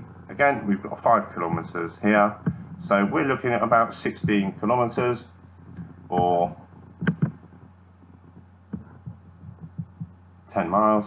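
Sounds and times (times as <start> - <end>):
low electrical hum: 0.0 - 11.0
soft short knocks: 5.7 - 7.7.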